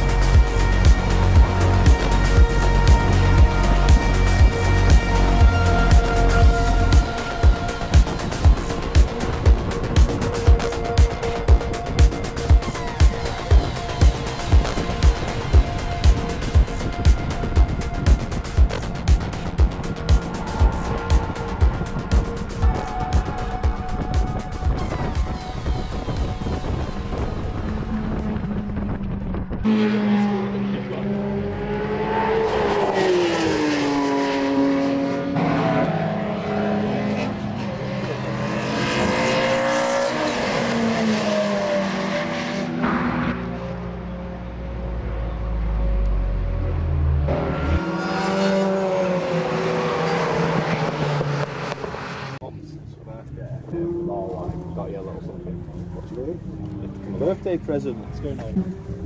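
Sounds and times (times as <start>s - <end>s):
car engine at racing speed: 0.0s - 59.0s
cars revving and passing: 0.0s - 59.0s
wind noise: 15.5s - 29.7s.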